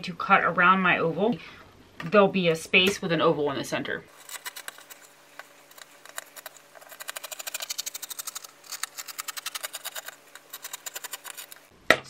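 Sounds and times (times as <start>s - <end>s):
scissors snipping fabric: 5.7s - 11.7s.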